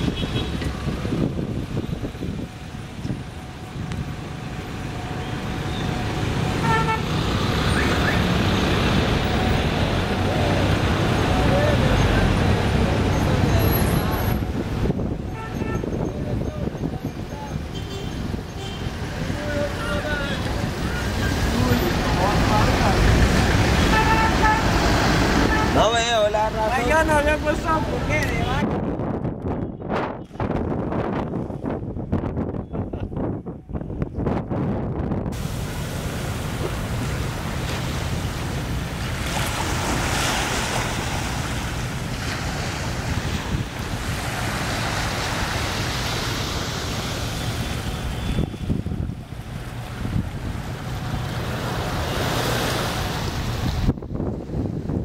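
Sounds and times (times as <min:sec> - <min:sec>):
wind rumble on microphone: 0:00.0 - 0:04.7, 0:12.3 - 0:18.6, 0:27.4 - 0:46.8, 0:47.5 - 0:55.0
traffic: 0:00.0 - 0:55.0
small waves washing onto sand: 0:35.4 - 0:48.5, 0:49.2 - 0:53.9.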